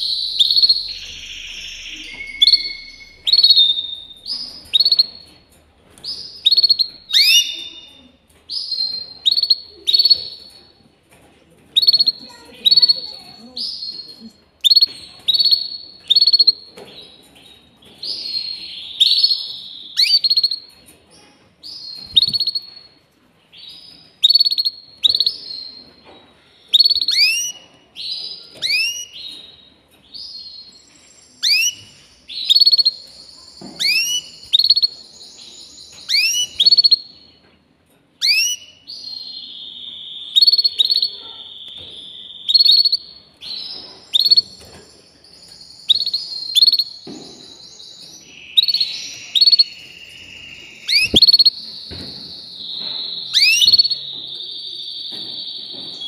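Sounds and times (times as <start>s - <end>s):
canary singing: 0.0s - 10.8s, 11.8s - 21.0s, 21.6s - 37.4s, 38.2s - 56.0s.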